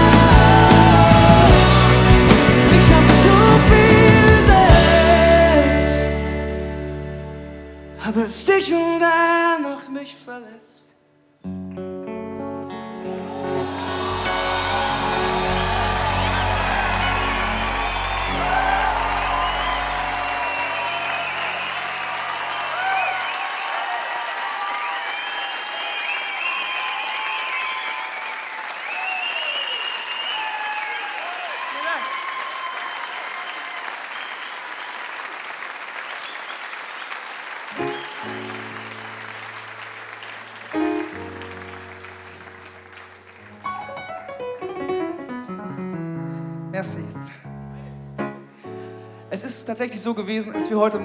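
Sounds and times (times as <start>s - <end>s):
audience applauding and cheering: 0.0s - 7.4s, 12.7s - 45.3s
band's held final chord: 12.8s - 21.9s.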